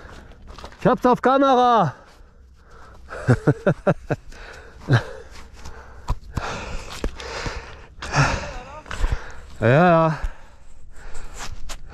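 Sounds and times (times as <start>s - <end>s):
man laughing: 3.1s - 4.2s, 4.8s - 5.3s
man breathing hard: 4.3s - 11.9s.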